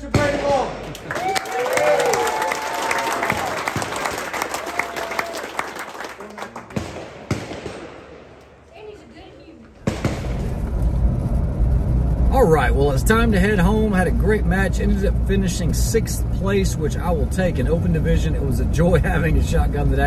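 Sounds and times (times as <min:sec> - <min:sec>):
crowd clapping and cheering: 0:00.8 - 0:07.1
vehicle cabin rumble: 0:10.4 - 0:20.0.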